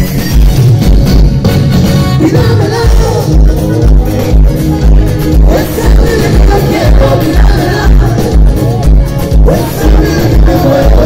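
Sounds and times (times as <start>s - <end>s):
heavy bass beat: 0.0s - 11.0s
live band music over pa: 0.0s - 11.0s
person singing: 2.1s - 11.0s.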